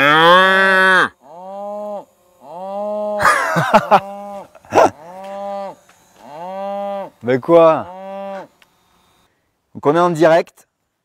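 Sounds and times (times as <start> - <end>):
cattle mooing: 0.0 - 3.2, 3.9 - 7.2, 7.8 - 8.5
harsh cow call: 0.0 - 8.5.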